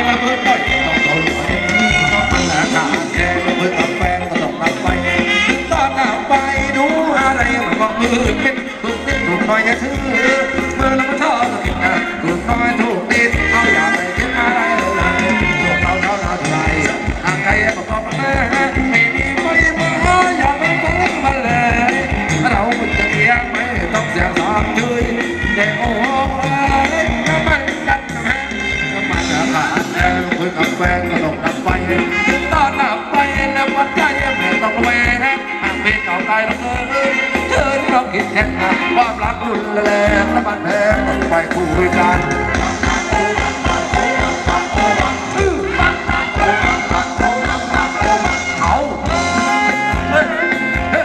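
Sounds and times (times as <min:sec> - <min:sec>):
dance music from live band: 0:00.0 - 0:51.0.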